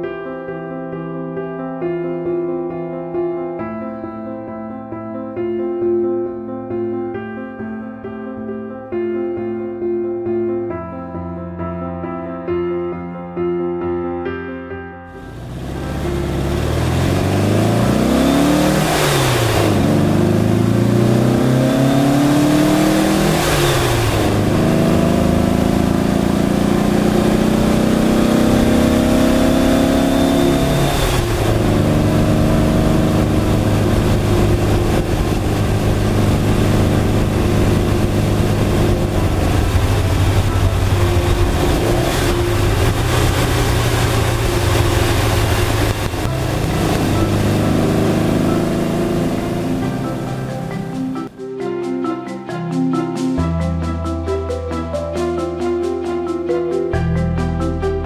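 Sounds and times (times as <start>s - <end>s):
car engine accelerating through gears: 15.1s - 51.3s.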